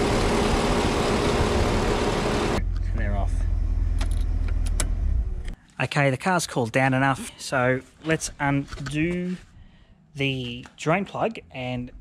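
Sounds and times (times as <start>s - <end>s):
car engine idling: 0.0s - 5.1s.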